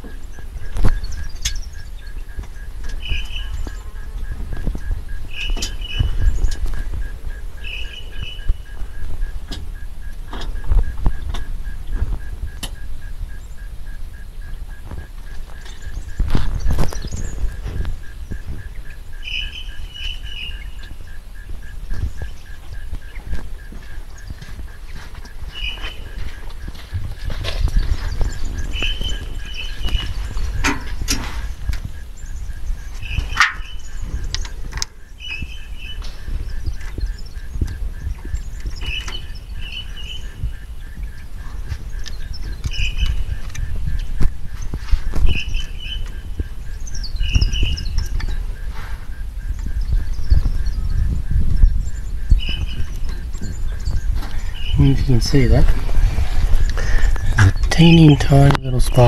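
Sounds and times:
steady low rumble: 0.0s - 59.0s
bird double chirp: 0.2s - 14.8s, 15.6s - 26.7s, 27.7s - 55.0s.

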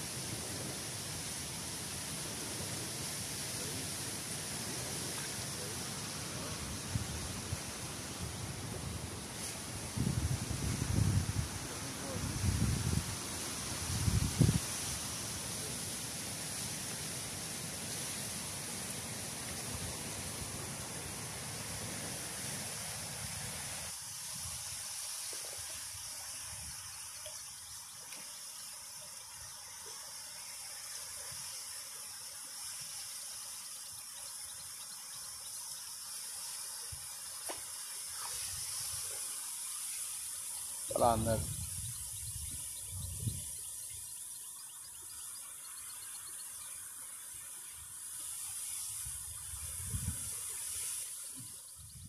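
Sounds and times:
running water hiss: 0.0s - 52.0s
wind rumble on microphone: 6.5s - 15.0s, 41.1s - 43.6s, 49.0s - 50.4s, 51.8s - 52.0s.

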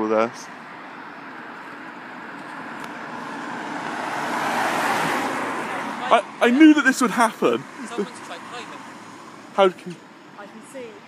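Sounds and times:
car approaching: 0.0s - 11.0s.

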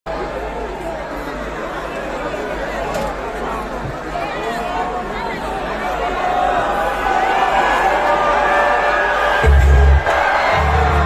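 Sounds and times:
crowd chattering: 0.1s - 11.0s.

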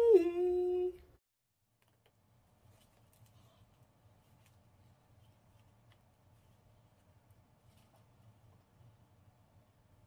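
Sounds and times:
woman singing a held note: 0.0s - 1.1s.

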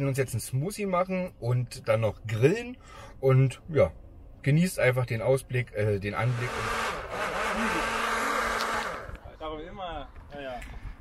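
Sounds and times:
blender running: 6.2s - 9.2s.

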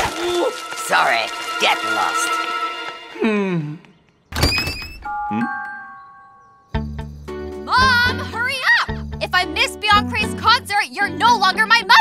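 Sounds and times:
cartoon door thunk: 4.3s - 5.1s.

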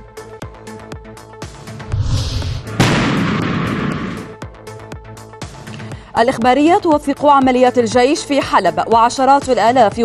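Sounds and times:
background music: 0.0s - 10.0s
explosion blast rumbling: 1.9s - 4.2s.

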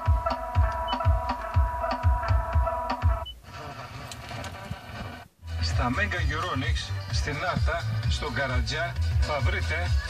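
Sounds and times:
car radio electronic music: 0.0s - 10.0s
radio hiss: 3.3s - 6.6s.

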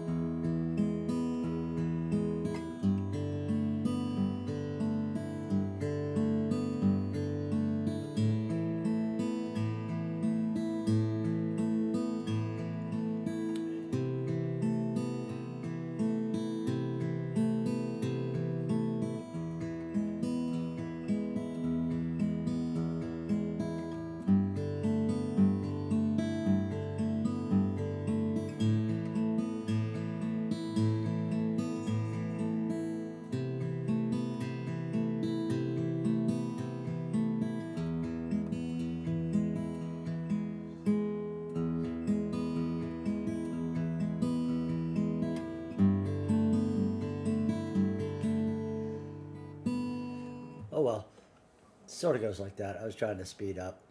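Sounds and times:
fingerpicked acoustic guitar: 0.0s - 52.8s.

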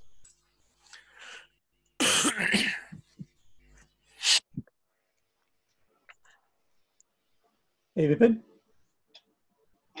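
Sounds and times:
person coughing: 2.0s - 3.1s.

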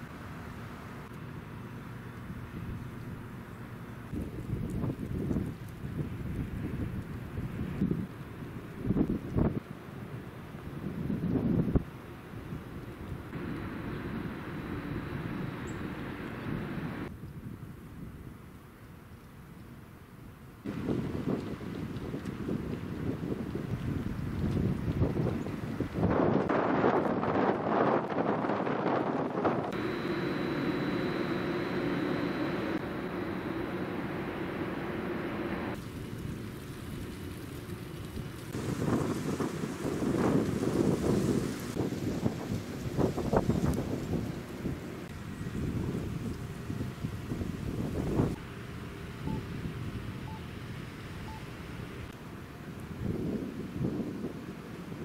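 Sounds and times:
wind rumbling on microphone: 0.0s - 55.0s.

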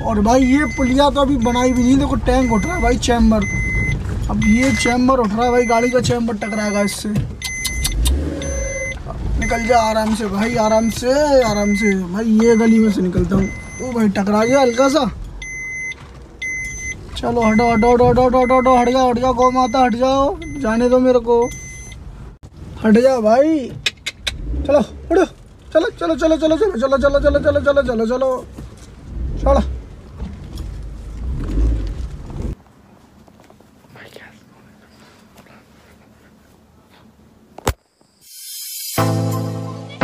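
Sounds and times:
car warning beeps: 0.0s - 22.2s
car engine humming: 0.0s - 33.8s
soft whisper: 33.8s - 37.2s.

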